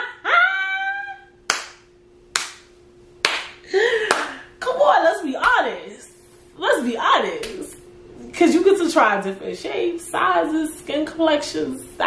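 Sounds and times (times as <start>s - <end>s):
hand claps: 1.5s - 4.4s.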